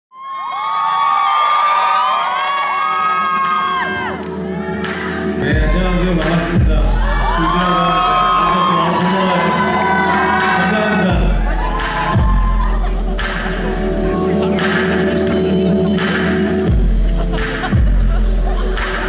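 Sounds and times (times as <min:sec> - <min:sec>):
audience cheering and whooping: 0:00.1 - 0:19.0
bass and drums: 0:04.9 - 0:09.0, 0:11.1 - 0:19.0.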